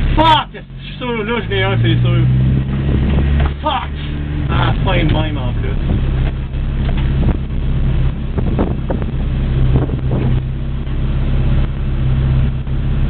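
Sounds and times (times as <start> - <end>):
car engine running at low revs: 0.0 - 13.0.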